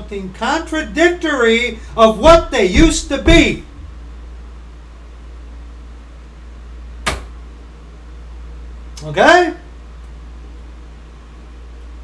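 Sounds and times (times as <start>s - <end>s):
steady low hum: 0.0s - 12.0s
sharp tap: 7.0s - 7.3s.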